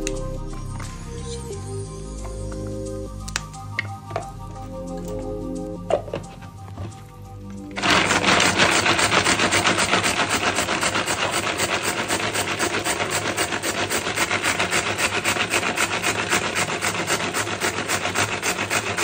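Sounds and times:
food chopper rasping: 0:07.7 - 0:19.0.

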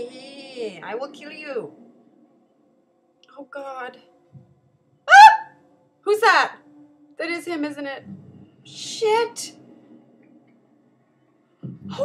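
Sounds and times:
woman squealing: 0:05.1 - 0:05.5.

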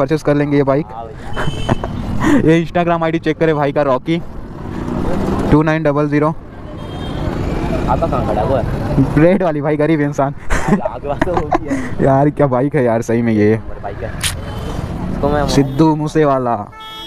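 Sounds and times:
men talking: 0:00.0 - 0:06.5, 0:07.6 - 0:14.4, 0:15.0 - 0:16.7
passing street traffic: 0:00.0 - 0:17.0.

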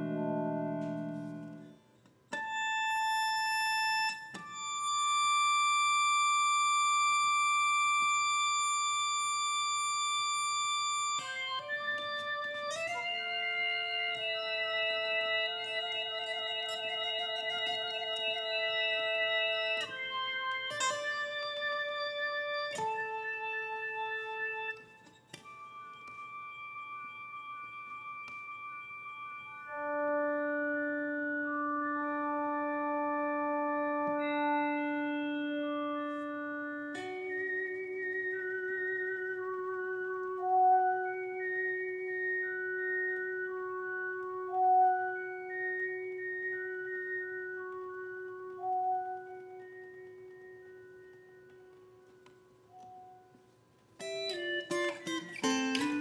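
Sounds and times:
synthesized guitar notes: 0:00.0 - 0:56.0.

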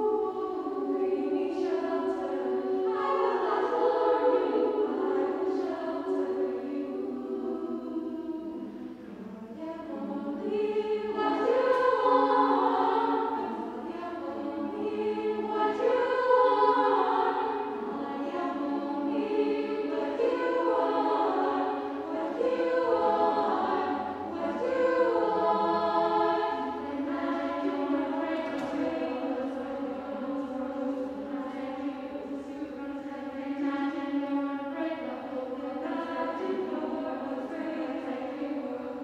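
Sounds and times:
women's choir singing a cappella: 0:00.0 - 0:39.0.

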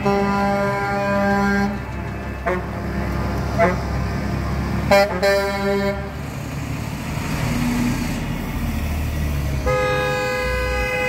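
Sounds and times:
vehicle horn: 0:00.0 - 0:01.8, 0:09.6 - 0:11.0
low rumble of passing engines: 0:00.0 - 0:11.0.

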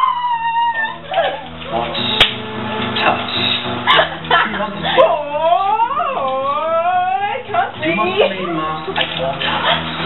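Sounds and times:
long high howl: 0:00.0 - 0:01.6
background music with low notes: 0:00.0 - 0:10.0.

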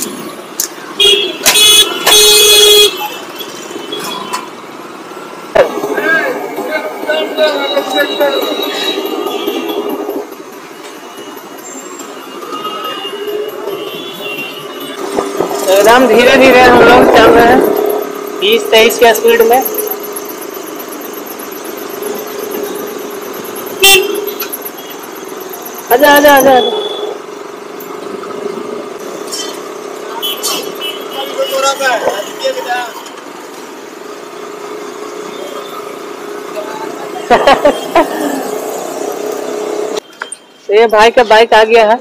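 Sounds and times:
road noise: 0:00.0 - 0:42.0
surrounding traffic noise: 0:00.0 - 0:42.0
distant horns: 0:06.6 - 0:18.4.

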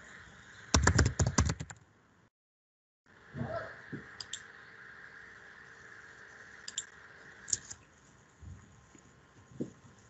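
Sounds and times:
steady hiss: 0:03.2 - 0:10.0
computer mouse clicks: 0:04.2 - 0:04.4, 0:06.6 - 0:06.9.

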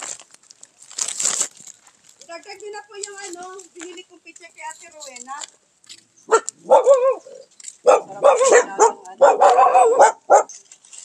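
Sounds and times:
dog barking: 0:06.3 - 0:10.6.

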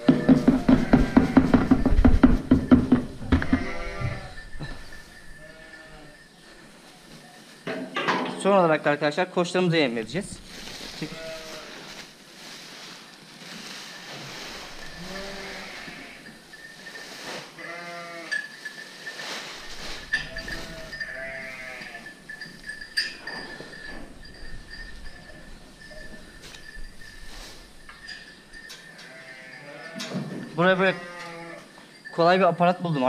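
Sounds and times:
sheep and lambs bleating: 0:00.0 - 0:01.7, 0:03.3 - 0:06.2, 0:10.9 - 0:11.8, 0:14.8 - 0:16.4, 0:17.5 - 0:18.4, 0:20.1 - 0:22.2, 0:29.0 - 0:31.8
sharp knocks: 0:00.0 - 0:03.9.

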